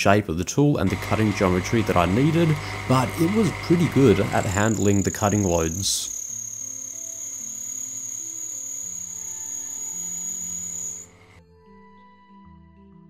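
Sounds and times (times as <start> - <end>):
lathe running with high whine: 0.9 - 11.4
soft background music: 1.0 - 13.0.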